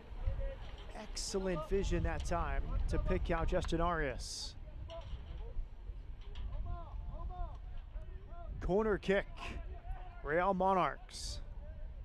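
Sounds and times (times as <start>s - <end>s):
low field rumble: 0.0s - 12.0s.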